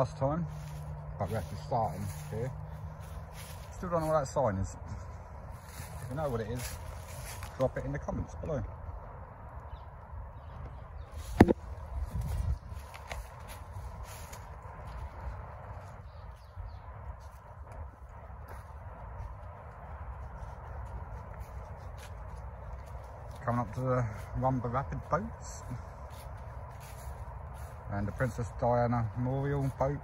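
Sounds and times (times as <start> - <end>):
footsteps on fallen leaves: 0.0 - 8.6, 11.0 - 30.0
low microphone rumble: 0.0 - 30.0.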